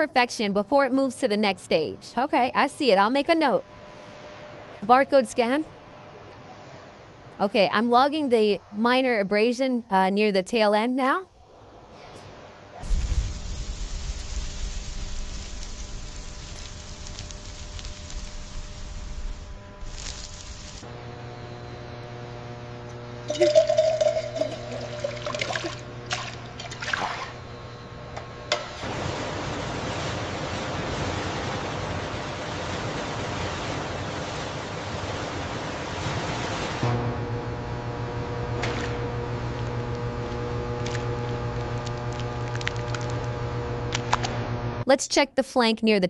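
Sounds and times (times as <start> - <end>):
machine hum: 13.2 - 44.8
liquid pouring and splashing: 23.3 - 27.4.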